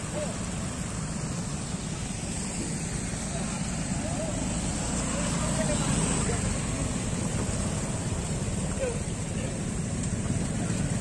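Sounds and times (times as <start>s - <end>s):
motor scooter engines running: 0.0s - 11.0s.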